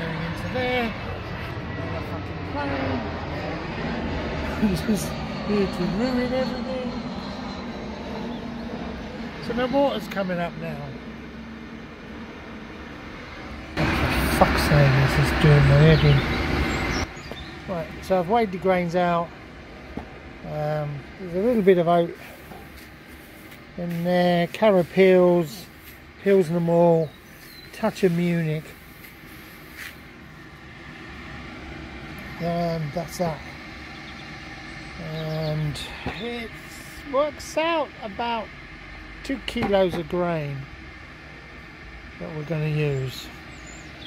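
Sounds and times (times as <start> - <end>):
airliner flying overhead: 0.0 - 44.0
loud hissy noise: 0.0 - 44.0.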